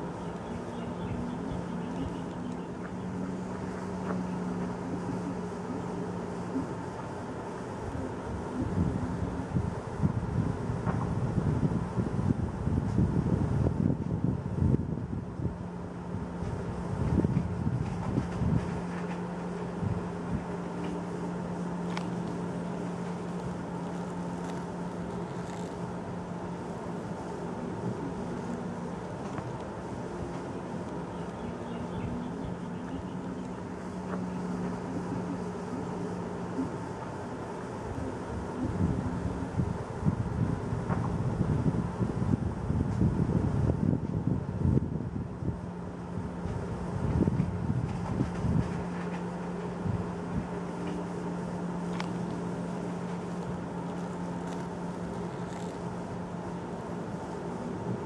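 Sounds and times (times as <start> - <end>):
low hum: 0.0 - 58.0
wind buffeting microphone: 7.8 - 25.6, 37.8 - 55.8.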